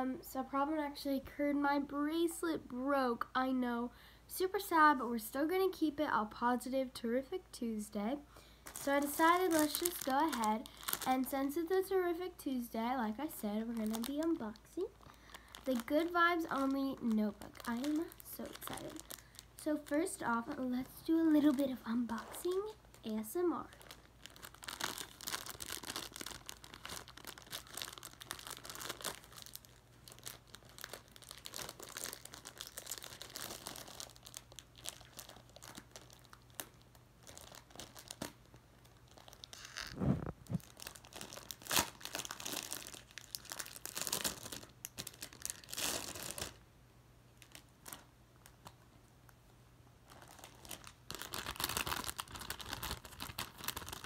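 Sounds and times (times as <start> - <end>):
plastic wrapping crinkling: 8.6 - 46.6, 47.4 - 48.9, 50.0 - 54.0.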